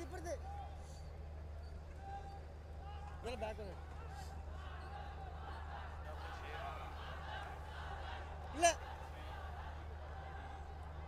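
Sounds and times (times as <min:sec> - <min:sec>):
distant crowd voices: 0:00.0 - 0:11.0.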